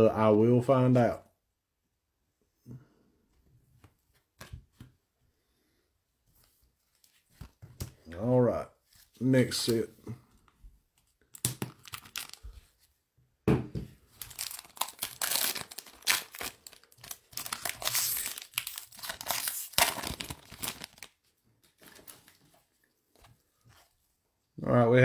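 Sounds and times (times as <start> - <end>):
foil pack crinkling: 11.4 - 12.6, 14.2 - 22.4.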